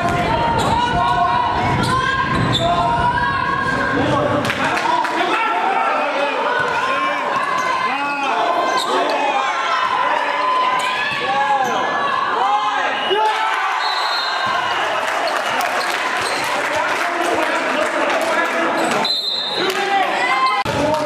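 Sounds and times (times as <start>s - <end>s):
voices echoing in a hall: 0.0s - 21.0s
sneakers squeaking on court floor: 15.8s - 16.4s.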